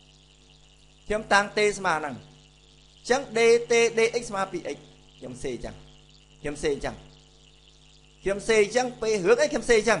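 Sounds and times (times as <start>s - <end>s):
faint hiss: 0.0s - 10.0s
low electrical hum: 0.0s - 10.0s
man speaking: 1.1s - 2.3s, 3.0s - 5.8s, 6.4s - 7.1s, 8.2s - 10.0s.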